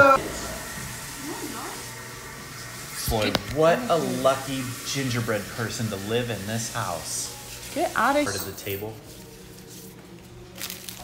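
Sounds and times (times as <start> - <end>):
steady room hiss: 0.0 - 11.0.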